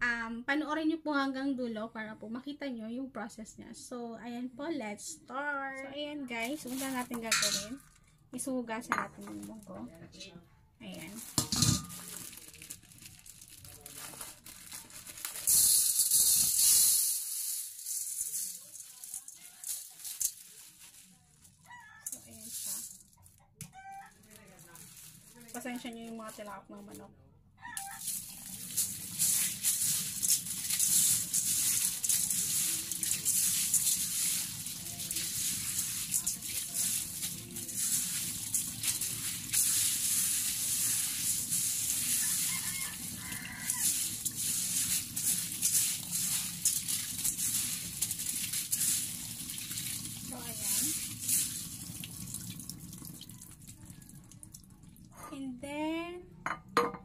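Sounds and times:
beans rubbed by hand: 6.4 - 7.6, 14.4 - 21.2, 27.8 - 51.9
tap running into metal colander: 6.7 - 7.8, 11.3 - 12.1, 28.0 - 53.1.

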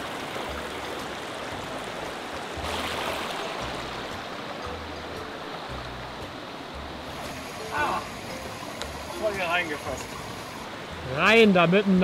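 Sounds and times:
creek water rushing over rocks: 0.0 - 12.0.

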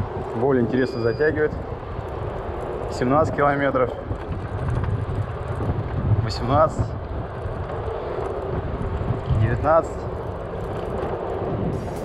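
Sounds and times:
electric scooter riding: 0.0 - 12.0
wind and road noise: 0.0 - 12.0.

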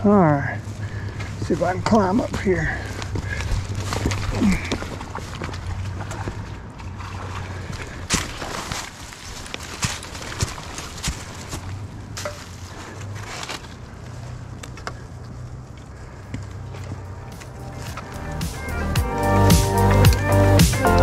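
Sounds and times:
twigs crackling underfoot: 0.0 - 21.0
footsteps crunching on dry leaves: 0.6 - 21.0.

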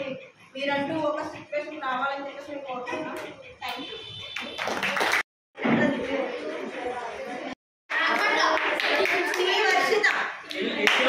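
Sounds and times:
voices talking: 0.0 - 4.6
people clapping: 3.2 - 5.3, 7.9 - 11.0.

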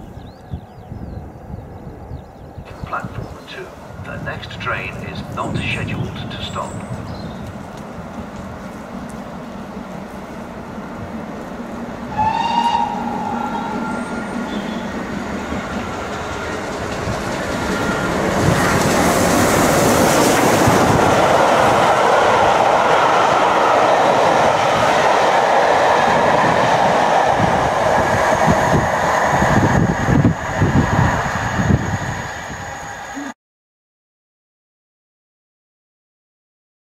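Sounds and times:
steam train passing: 2.7 - 33.4
steam locomotive whistle: 12.1 - 15.0.

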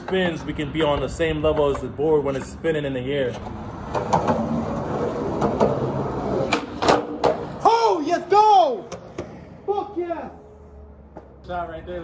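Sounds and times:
skateboard clicks and knocks: 0.0 - 2.6, 3.3 - 7.7
skateboard wheels rolling on concrete: 0.0 - 9.7.

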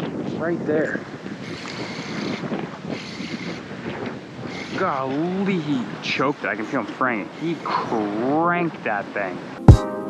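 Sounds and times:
wind buffeting microphone: 0.0 - 9.6.

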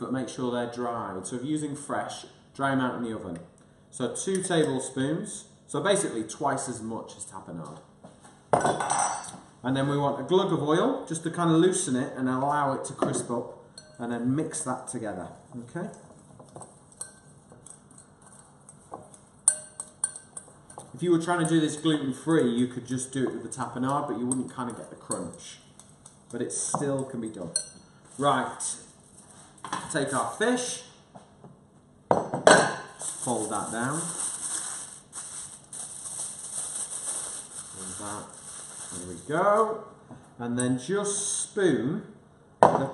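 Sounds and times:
spoon clinking against glass bowl: 13.8 - 14.0, 16.9 - 20.9, 27.5 - 28.0
steady high hiss: 32.9 - 39.8
aluminium foil crinkling: 33.0 - 39.4.

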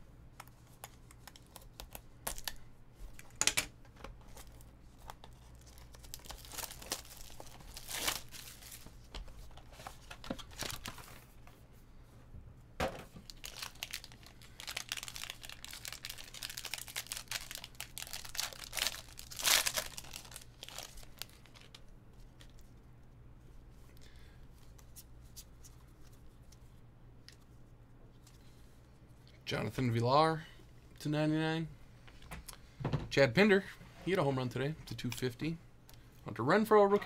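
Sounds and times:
foil packs tearing and crinkling: 5.6 - 8.9, 13.2 - 21.8.

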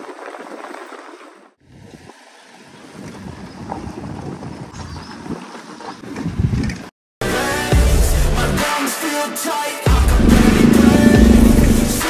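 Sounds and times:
wind buffeting microphone: 1.7 - 6.9, 10.2 - 12.0.

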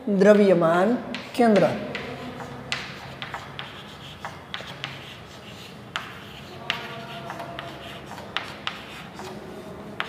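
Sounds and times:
chalk tapping and scratching on blackboard: 1.1 - 10.0.

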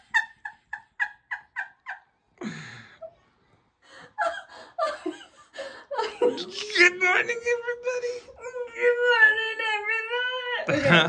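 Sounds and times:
woman laughing breathily: 0.0 - 6.4.

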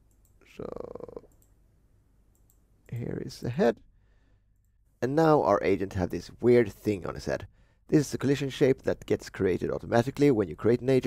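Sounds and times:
faint computer mouse clicks: 0.0 - 0.4, 2.3 - 2.6
person speaking: 0.4 - 1.4, 2.9 - 3.9, 5.0 - 11.0.

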